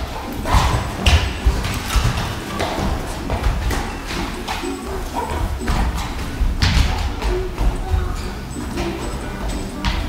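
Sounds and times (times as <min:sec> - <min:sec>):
footwork on canvas: 0:00.0 - 0:10.0.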